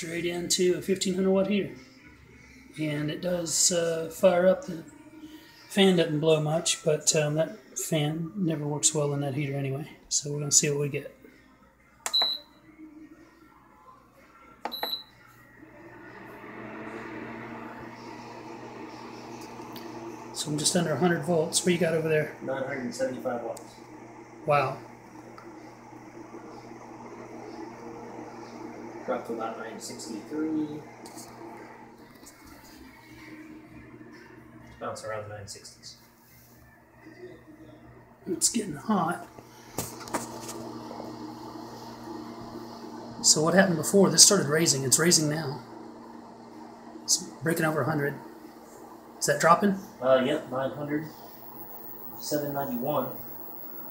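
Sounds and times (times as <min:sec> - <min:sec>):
cooktop steady hum: 0:00.0 - 0:53.9
fan whirring: 0:14.7 - 0:53.9.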